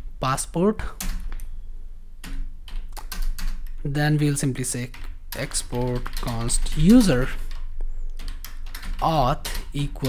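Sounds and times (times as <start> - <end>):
keyboard typing: 2.2 - 3.8, 4.6 - 10.0.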